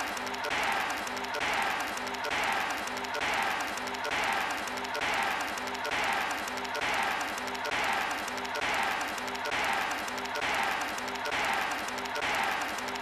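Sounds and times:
looped cartoon soundtrack hiss: 0.0s - 13.0s.

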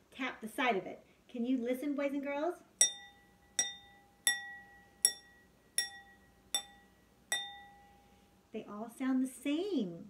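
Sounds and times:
pencil tapping wine glasses: 2.8s - 7.9s.

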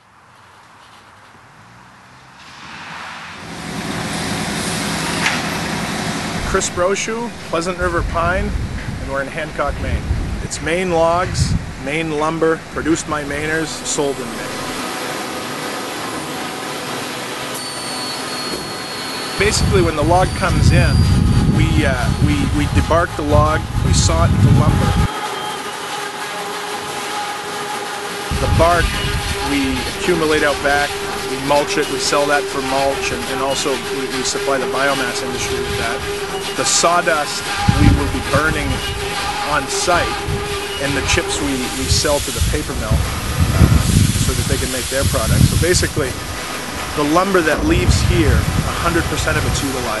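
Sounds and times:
constant mechanical whine: 3.4s - 50.0s
heavy machinery humming: 3.4s - 50.0s.

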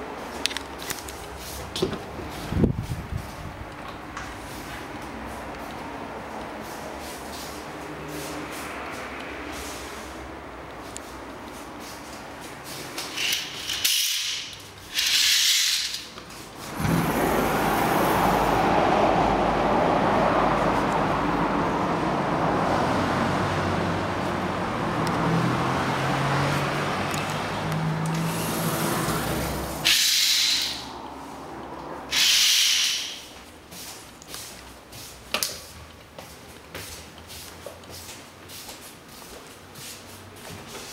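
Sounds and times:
city street traffic: 0.0s - 40.9s.

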